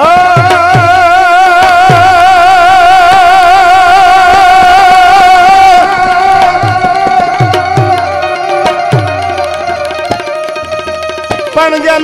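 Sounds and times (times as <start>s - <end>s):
folk singer holding note with vibrato: 0.0s - 10.6s
tabla drum strokes: 0.0s - 12.0s.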